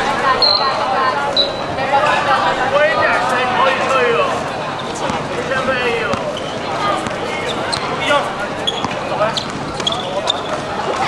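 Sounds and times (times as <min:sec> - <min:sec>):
voices and shouts: 0:00.0 - 0:11.0
basketball bouncing on hard court: 0:07.0 - 0:08.0, 0:08.7 - 0:10.0.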